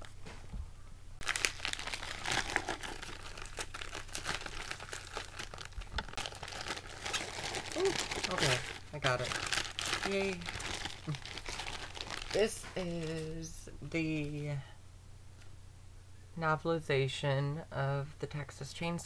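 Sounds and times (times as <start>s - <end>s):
bubble packaging crinkling: 1.2s - 13.6s.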